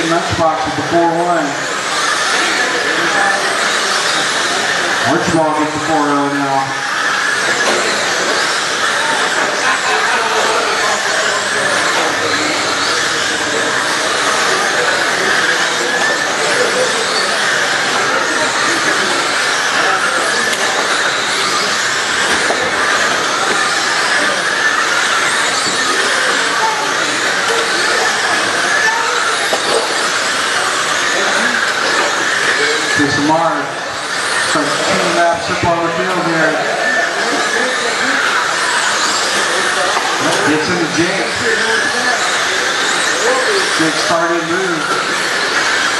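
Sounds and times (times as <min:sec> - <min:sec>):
rc car motors whining: 0:00.0 - 0:45.9.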